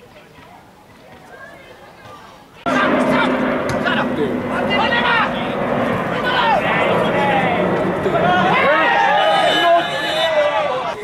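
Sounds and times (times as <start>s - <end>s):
steady rushing roar: 2.6s - 10.9s
players shouting: 2.7s - 11.0s.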